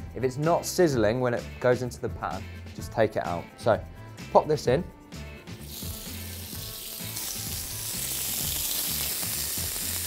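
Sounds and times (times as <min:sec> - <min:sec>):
steak sizzling in frying pan: 0:05.5 - 0:10.0.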